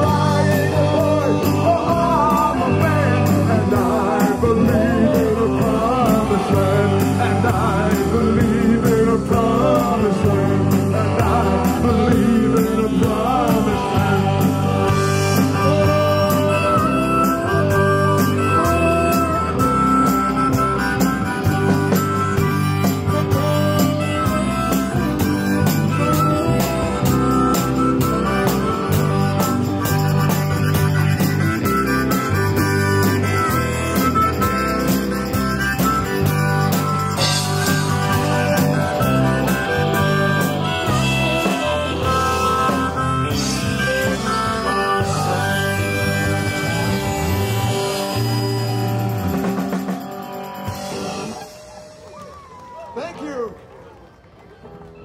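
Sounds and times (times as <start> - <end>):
harmonica: 0.0 - 52.1
rock and roll band playing: 0.0 - 53.5.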